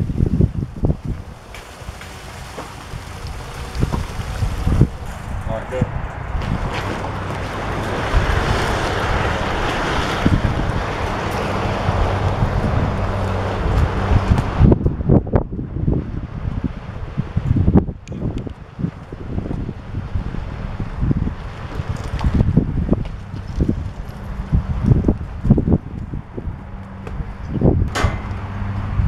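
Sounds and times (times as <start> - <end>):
shop vacuum sucking water: 0.0 - 5.6, 6.4 - 14.7
wind buffeting microphone: 0.0 - 29.0.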